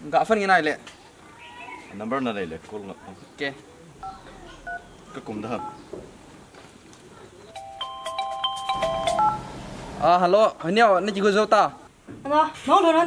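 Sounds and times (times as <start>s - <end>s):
phone keypad dialing beeps: 4.0s - 4.9s, 5.6s - 5.8s, 7.5s - 9.5s.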